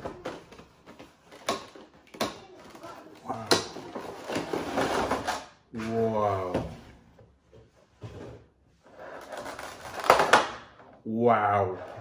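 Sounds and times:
plastic packaging rustling: 0.0 - 5.4, 9.0 - 10.4.

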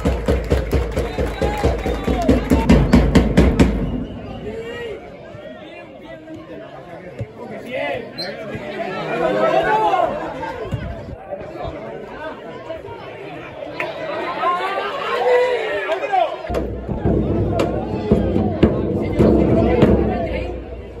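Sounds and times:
people talking and calling out: 0.9 - 21.0.

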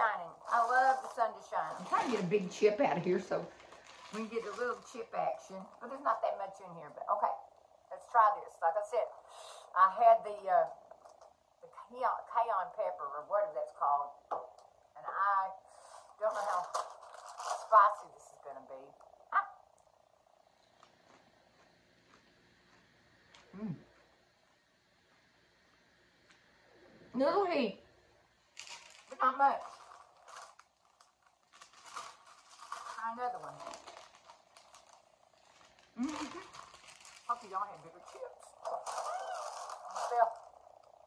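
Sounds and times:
faint chewing crunches: 18.9 - 26.8, 28.5 - 41.0
woman humming mmm: 23.4 - 24.0, 36.0 - 36.6.

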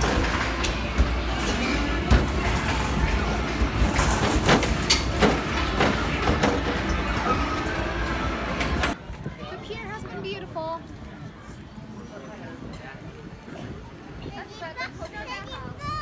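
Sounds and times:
basketballs hitting backboards and rims: 0.0 - 7.6.

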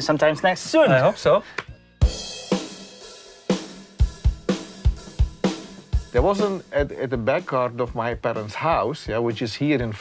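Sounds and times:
drum kit playing a beat: 0.0 - 10.0.

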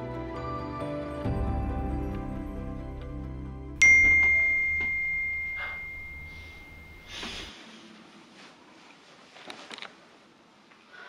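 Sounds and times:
high bell-like ding: 3.8 - 7.5.

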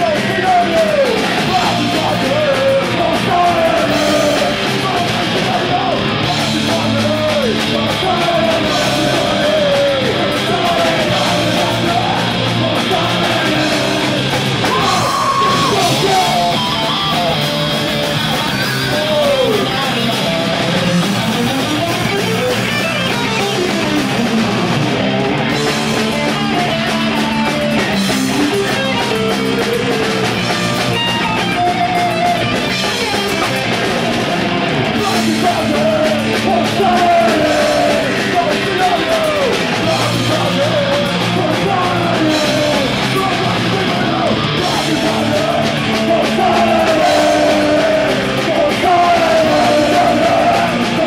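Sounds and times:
punk band playing live: 0.0 - 51.0
shouted lead vocals: 0.0 - 51.0.

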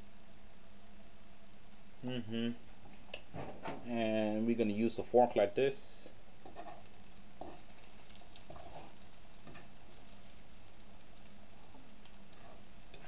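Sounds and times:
steady low hiss: 0.0 - 13.0
fork scraping frying pan: 6.4 - 9.7.

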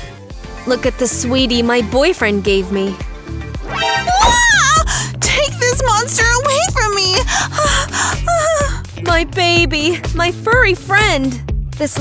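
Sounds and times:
background music: 0.0 - 12.0
woman gasping and whimpering: 4.1 - 5.2, 7.2 - 8.9.

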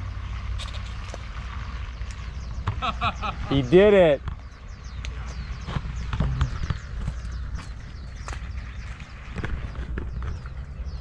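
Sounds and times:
bicycle rattling on dirt lane: 0.0 - 4.9, 5.5 - 11.0
wind on microphone: 4.2 - 11.0.

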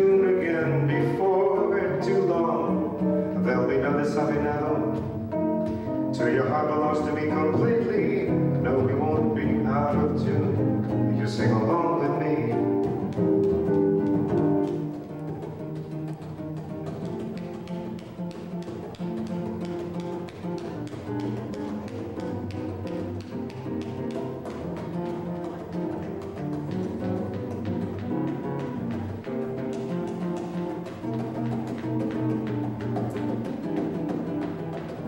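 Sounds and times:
jazz on acoustic guitar: 0.0 - 35.0.

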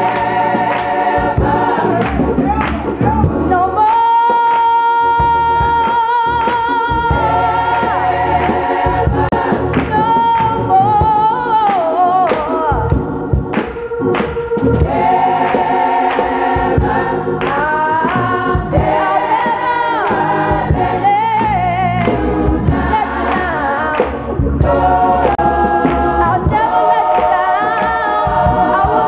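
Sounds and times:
choir singing: 0.0 - 29.0
steady beat: 0.0 - 29.0
woman singing gospel: 3.3 - 8.0, 9.0 - 13.0, 17.4 - 29.0.

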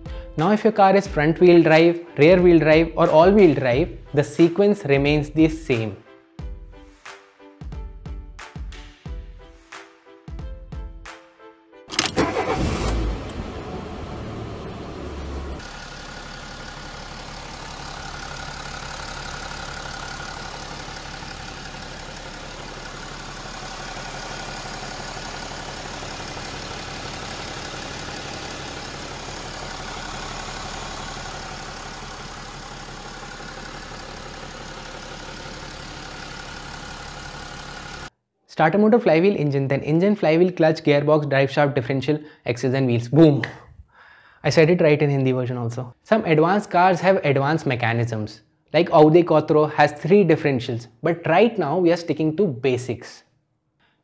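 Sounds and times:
car engine starting and idling: 11.9 - 38.1.

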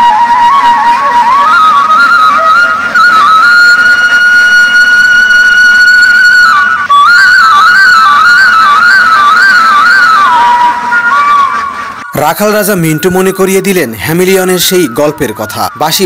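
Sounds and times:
bamboo flute playing: 0.0 - 16.0.

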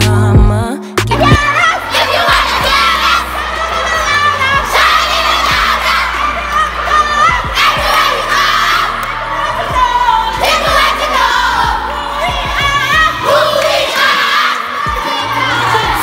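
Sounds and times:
children shouting and cheering: 1.2 - 16.0.

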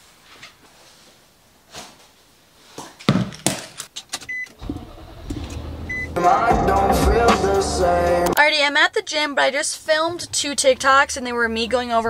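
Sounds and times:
car engine rumble: 4.6 - 8.4
short electronic beep: 5.9 - 6.2.

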